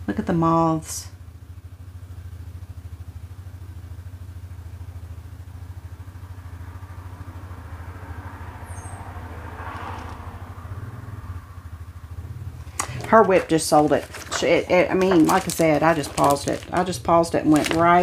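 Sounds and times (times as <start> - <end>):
low mechanical hum with pulse: 0.0 - 18.0.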